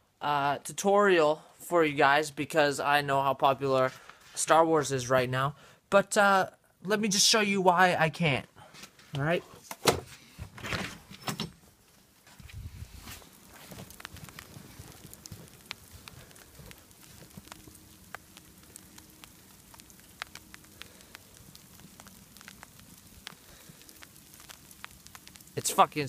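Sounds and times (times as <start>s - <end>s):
snowstorm hush: 12.3s - 26.0s
snow ticking on jacket: 12.4s - 26.0s.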